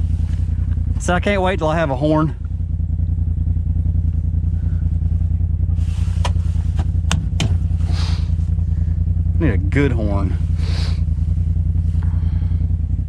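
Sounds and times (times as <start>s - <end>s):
engine running at low speed: 0.0s - 13.0s
sharp knocks and rattles: 6.2s - 7.8s.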